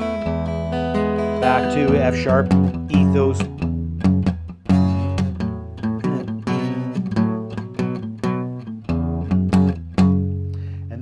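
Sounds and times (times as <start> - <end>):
acoustic guitar strumming: 0.0 - 10.8.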